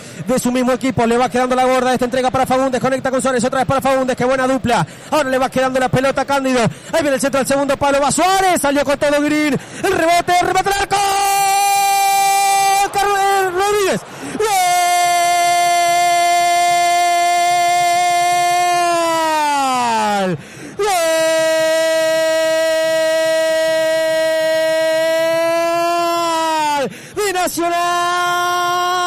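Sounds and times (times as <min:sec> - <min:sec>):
commentator's drawn-out goal cry: 0:07.1 - 0:29.0.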